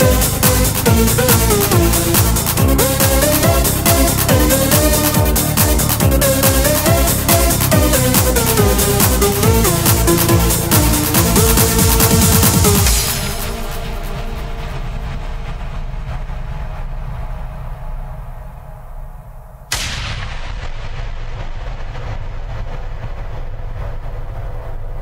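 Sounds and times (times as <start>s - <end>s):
low rumble: 0.0s - 25.0s
synthesized explosion blast: 18.9s - 25.0s.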